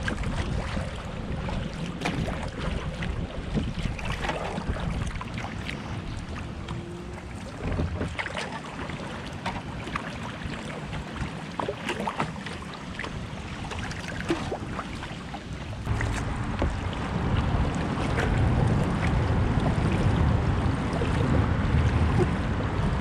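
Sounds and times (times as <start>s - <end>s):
water splashing against kayak hull: 0.0s - 23.0s
steady low rumble: 15.7s - 23.0s.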